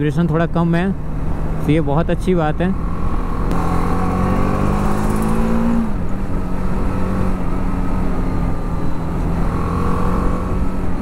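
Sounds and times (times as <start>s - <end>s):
motorcycle engine revving: 2.4s - 11.0s.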